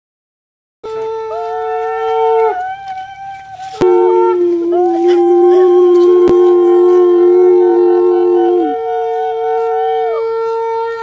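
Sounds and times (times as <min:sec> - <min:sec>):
conch shells blown: 0:00.8 - 0:11.0.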